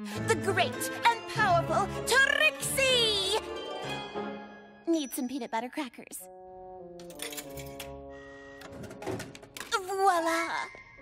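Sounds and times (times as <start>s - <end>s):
background music chords: 0.0s - 4.9s, 6.2s - 9.6s.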